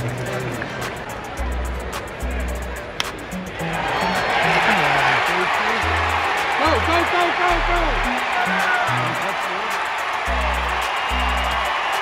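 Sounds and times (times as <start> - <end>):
stadium crowd cheering: 3.1 - 12.0.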